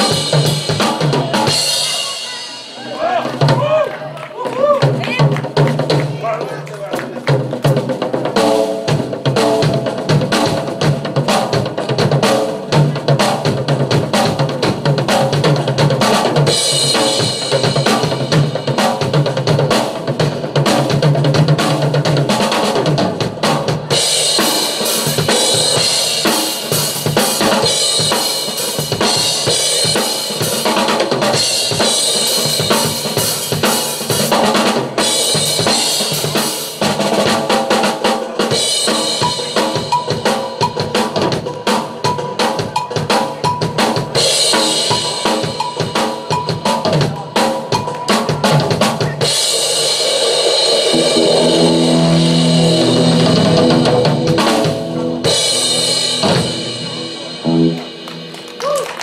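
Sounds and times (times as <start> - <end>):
rock drum solo: 0.0 - 59.0
cymbals washing: 49.2 - 59.0.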